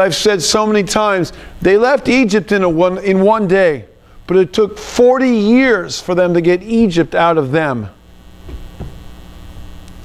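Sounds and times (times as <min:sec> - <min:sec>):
low electrical mains hum: 0:00.0 - 0:10.0.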